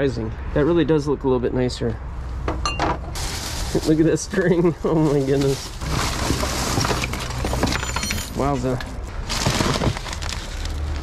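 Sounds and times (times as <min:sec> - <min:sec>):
plastic bags and paper rustling: 0:03.1 - 0:11.0.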